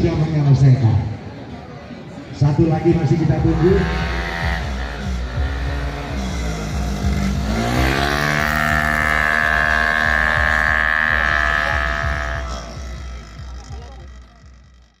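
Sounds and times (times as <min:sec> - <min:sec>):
scooter engine revving: 0:03.3 - 0:15.0.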